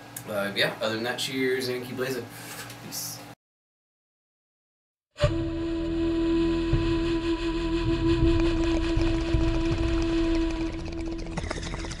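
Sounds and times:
long held tone: 5.2s - 11.9s.

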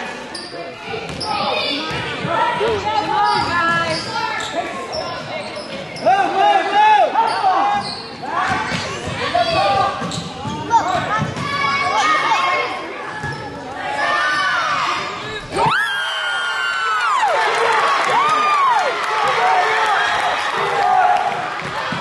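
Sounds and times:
voices shouting in echoing gym: 0.0s - 22.0s.

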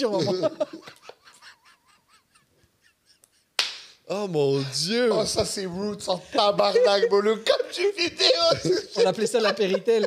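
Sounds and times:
stifled wheezing laughter: 0.6s - 3.6s.

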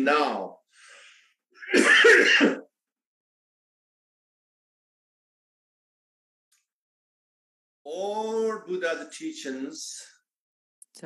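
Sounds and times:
man coughing: 1.6s - 2.7s.

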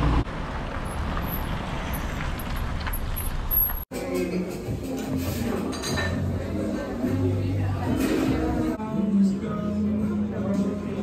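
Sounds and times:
car passing on wet asphalt: 0.0s - 3.8s
street traffic: 0.0s - 3.9s.

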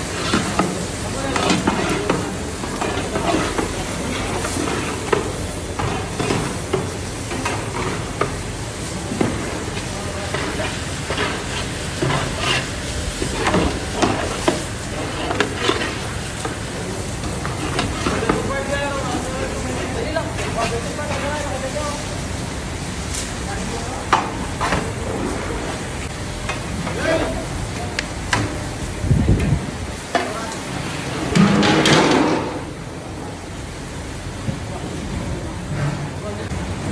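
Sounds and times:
chicken sizzling in a pan: 0.0s - 29.1s
metal ladle scraping a pan: 10.3s - 14.4s.

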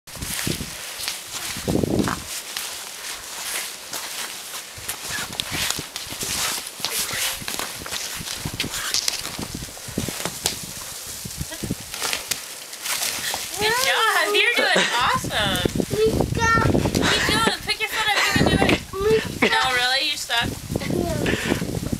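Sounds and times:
snow crunching under crawling child: 0.1s - 21.8s.

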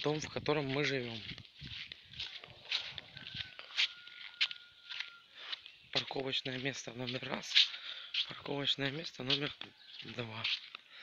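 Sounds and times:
footsteps on sandy dirt: 0.0s - 11.0s.

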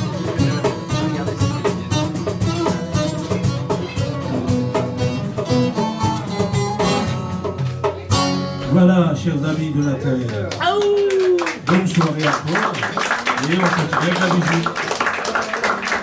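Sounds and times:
goblet drum rhythm: 0.0s - 8.8s.

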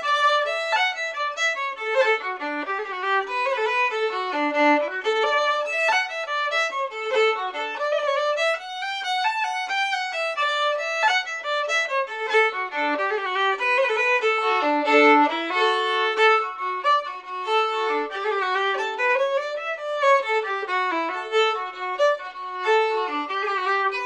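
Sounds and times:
solo fiddle playing a jig: 0.0s - 24.0s.

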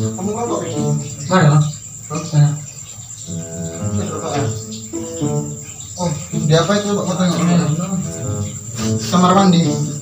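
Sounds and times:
music or voices: 0.0s - 1.7s, 3.3s - 10.0s
crickets trilling: 0.0s - 10.0s.

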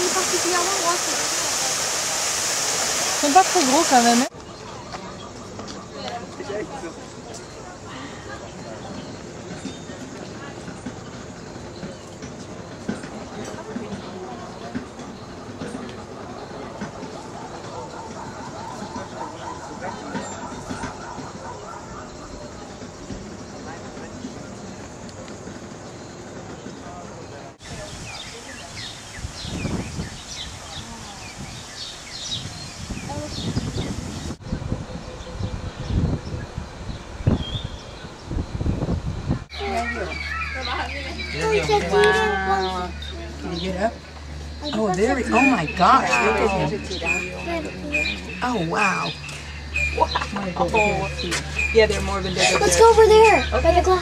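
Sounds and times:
outdoor noise: 0.0s - 54.0s
people talking indistinctly: 3.2s - 4.3s, 39.5s - 54.0s
small birds chirping: 3.2s - 38.5s, 39.5s - 54.0s.

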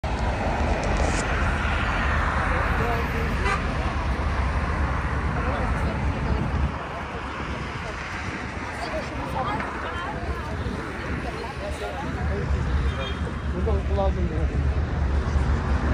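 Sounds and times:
heavy low rumble: 0.0s - 15.9s
hubbub of voices: 0.0s - 15.9s
road traffic passing: 0.0s - 15.9s.

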